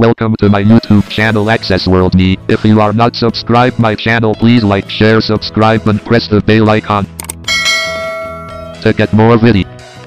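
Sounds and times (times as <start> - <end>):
bell-like chime ringing: 7.5 - 8.9.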